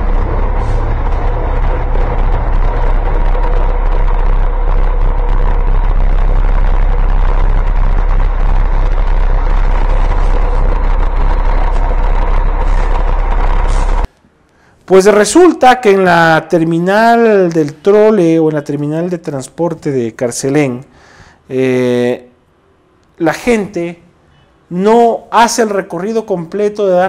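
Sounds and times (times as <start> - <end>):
bus engine rumble: 0.0 - 14.1
steady hum: 0.0 - 15.5.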